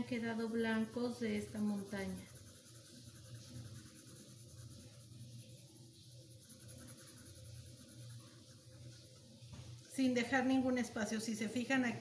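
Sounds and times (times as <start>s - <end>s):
pencil scratching on paper: 0.0s - 9.3s.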